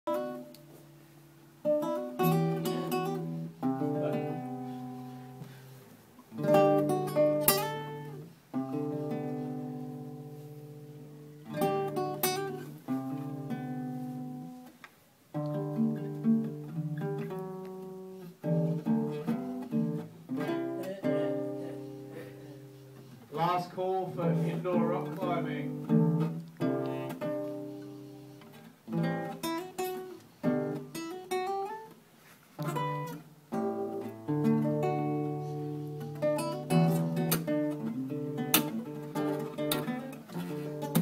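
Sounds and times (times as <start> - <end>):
acoustic guitar strumming chords: 0.1 - 41.0.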